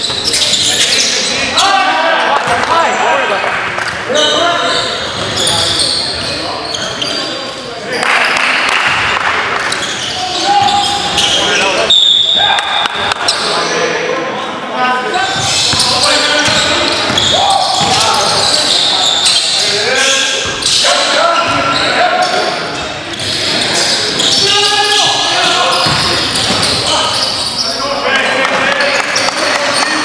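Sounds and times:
shoe squeaks: 0.0 - 1.6, 4.1 - 7.7, 9.7 - 13.8, 15.1 - 27.9
players calling out: 0.0 - 30.0.

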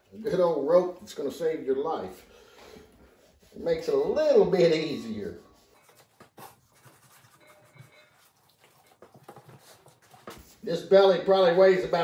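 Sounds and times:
knife scraping and slicing meat: 5.6 - 10.3.

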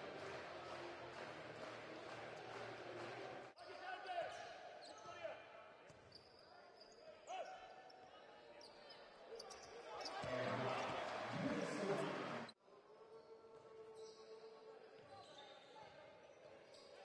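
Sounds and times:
crowd murmur and voices: 0.0 - 3.6, 9.2 - 15.2
sneakers squeaking: 4.4 - 11.2.

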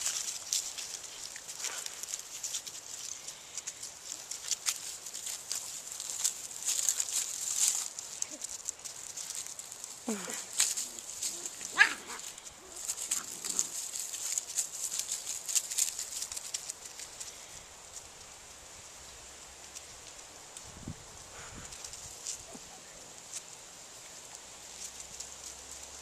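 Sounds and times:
puppies scuffling on concrete: 0.0 - 18.4, 19.3 - 20.7, 21.3 - 26.0
puppy yelping: 10.2 - 13.8.

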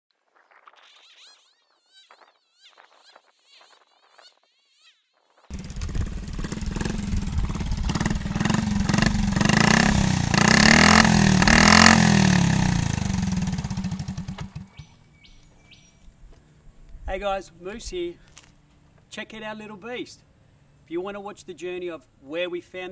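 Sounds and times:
small motorcycle engine revving: 5.5 - 14.9.

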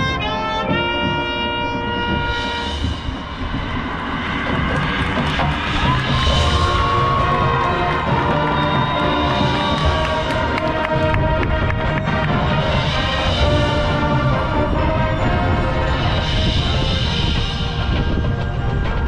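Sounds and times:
held brass chord: 0.0 - 19.0
marching band playing: 0.0 - 19.0
sharp percussion hits: 0.9 - 19.0.

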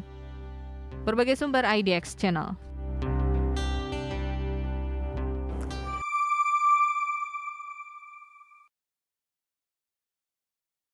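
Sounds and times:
high electronic chime: 5.7 - 8.7.

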